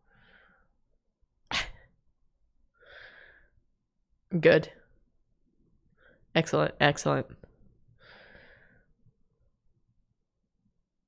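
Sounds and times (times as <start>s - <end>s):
faint breath: 0.0s - 0.8s, 2.8s - 3.6s, 8.0s - 9.0s
person sneezing: 1.5s - 1.9s.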